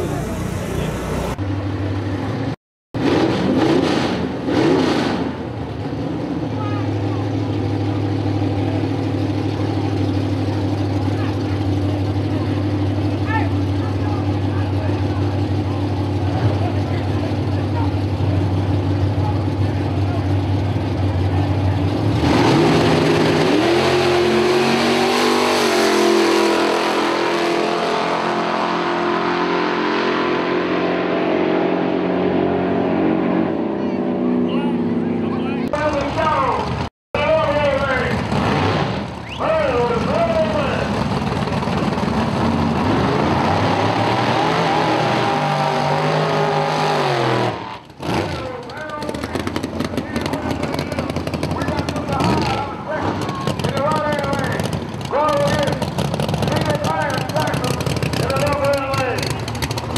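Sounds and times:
drag racing car engines revving: 0:00.0 - 0:59.9.

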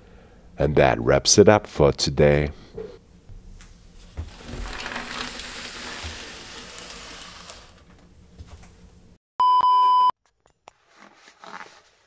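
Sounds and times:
soft scratchy rustle: 0:04.0 - 0:07.9
test card tone beep: 0:09.4 - 0:10.1.

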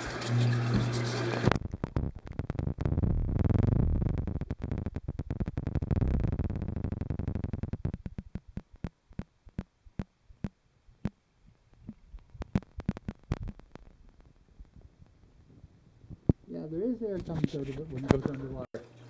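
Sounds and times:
air bubbles clicking and crackling: 0:00.1 - 0:16.5
muffled underwater rumble: 0:00.7 - 0:08.8.

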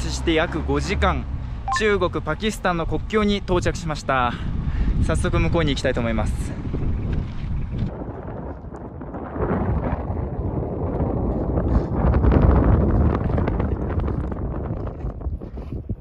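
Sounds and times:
wind buffeting microphone: 0:02.8 - 0:16.0.

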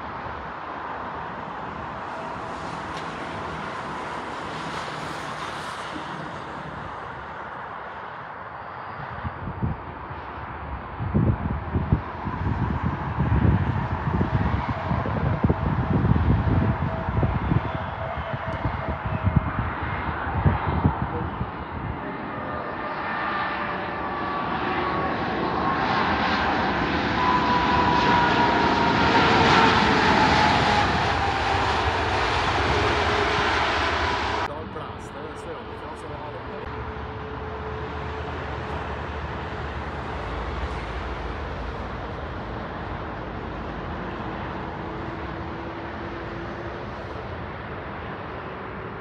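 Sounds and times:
jet airliner landing: 0:00.0 - 0:49.0
jet engine whine: 0:00.0 - 0:49.0.

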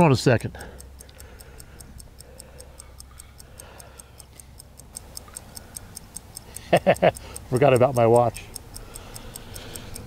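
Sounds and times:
pocket watch ticking: 0:00.0 - 0:10.0.

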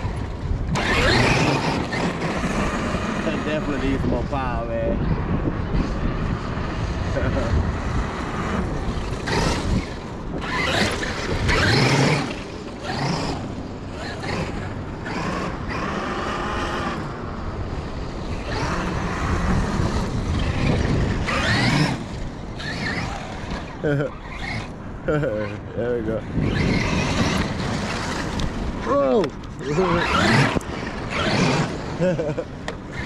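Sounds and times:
electric motor whining: 0:00.0 - 0:33.0
wind on microphone: 0:00.0 - 0:33.0.

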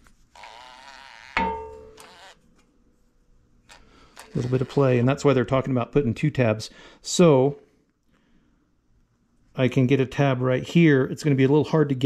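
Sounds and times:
metal clank ringing: 0:01.4 - 0:02.0.

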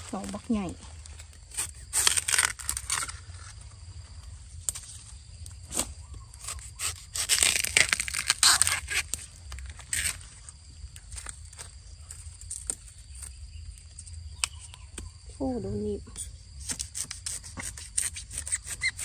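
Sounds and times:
dry husk scraping and crackling: 0:00.0 - 0:15.2.

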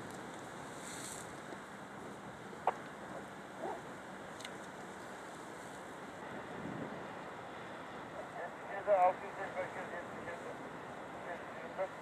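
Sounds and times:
wind: 0:00.0 - 0:12.0.

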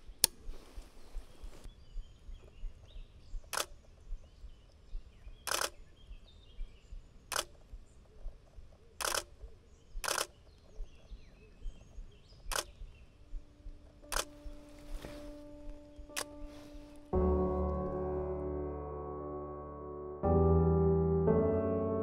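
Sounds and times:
camera shutter clicks: 0:03.5 - 0:03.7, 0:05.5 - 0:05.8, 0:07.3 - 0:07.6, 0:09.0 - 0:09.3, 0:10.0 - 0:10.4, 0:12.5 - 0:12.8, 0:14.1 - 0:14.4, 0:16.1 - 0:16.4.

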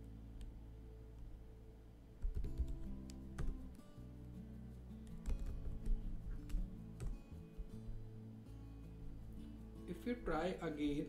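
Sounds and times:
background music: 0:00.0 - 0:11.0
keyboard keys clicking: 0:02.2 - 0:03.7, 0:05.0 - 0:07.2.

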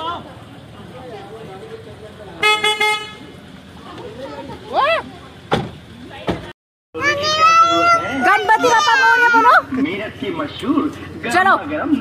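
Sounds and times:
car horn beeping: 0:02.4 - 0:03.4.

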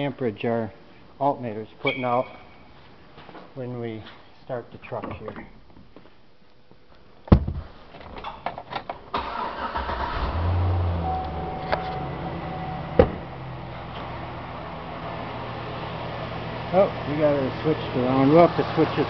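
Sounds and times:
truck engine starting and idling: 0:09.1 - 0:19.0
sharp knock: 0:13.0 - 0:13.2.

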